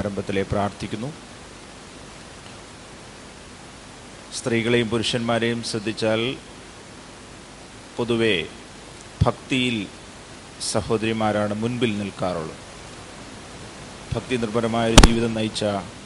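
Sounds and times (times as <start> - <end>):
man speaking into a microphone: 0.0 - 1.2, 4.3 - 6.4, 9.2 - 9.9, 10.6 - 12.6, 14.1 - 16.0
steady hiss: 0.0 - 16.0.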